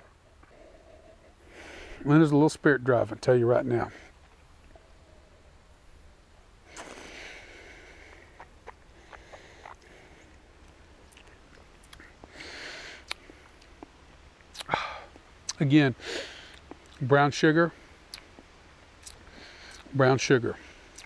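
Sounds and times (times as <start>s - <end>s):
lip and tongue clicks: 8.1s - 9.9s, 10.6s - 12.1s, 13.0s - 13.8s, 14.5s - 15.6s, 18.1s - 18.4s, 19.0s - 19.9s
breathy exhale: 14.7s - 15.1s.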